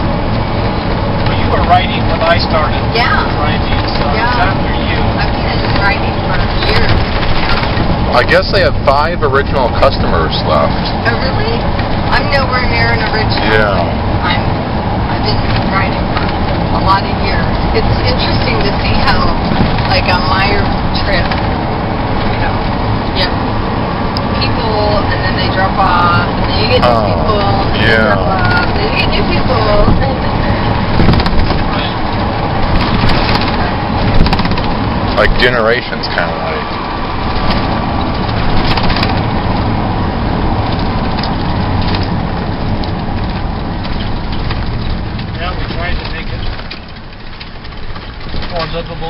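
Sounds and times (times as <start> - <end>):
light rattles and knocks: 0.0 - 24.4, 27.5 - 49.0
bus engine and road rumble: 0.0 - 49.0
faint voices: 8.0 - 14.5, 24.3 - 32.1, 35.2 - 36.7.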